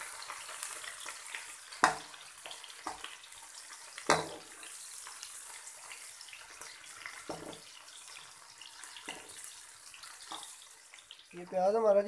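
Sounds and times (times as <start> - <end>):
onions sizzling in hot oil: 0.0 - 12.0
metal spoon knocking against pan: 4.1 - 4.5.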